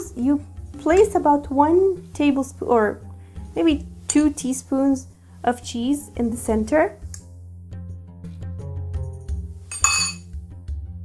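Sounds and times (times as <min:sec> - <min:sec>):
background music: 0:00.0 - 0:11.0
metal spoon clinking glass bowl: 0:09.7 - 0:10.3.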